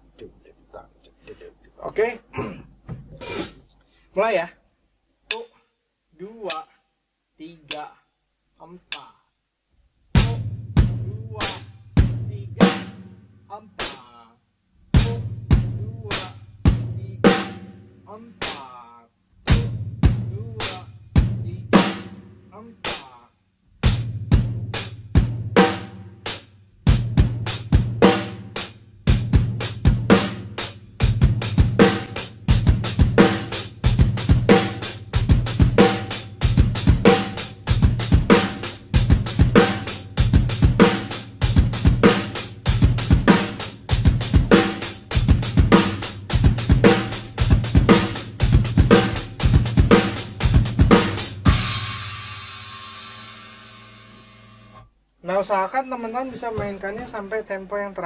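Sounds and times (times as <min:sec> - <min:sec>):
drum kit beat: 0:02.7 - 0:03.7, 0:05.2 - 0:05.6, 0:10.1 - 0:54.8
cymbal crash: 0:51.5 - 0:54.7.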